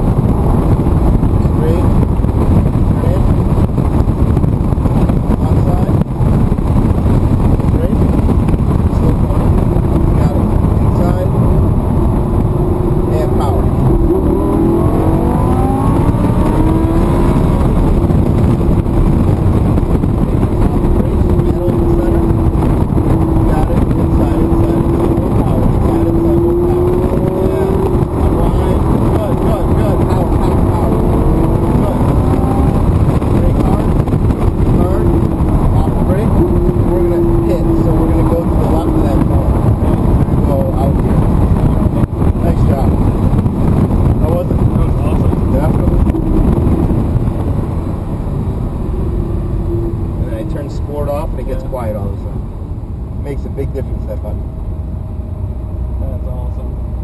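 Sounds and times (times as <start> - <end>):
car engine from inside cabin: 0.0 - 57.0
road and wind noise: 0.0 - 57.0.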